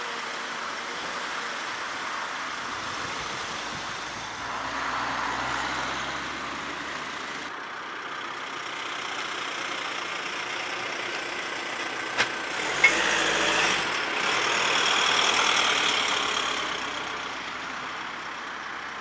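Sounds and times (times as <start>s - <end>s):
vehicle engine idling: 6.6s - 13.3s.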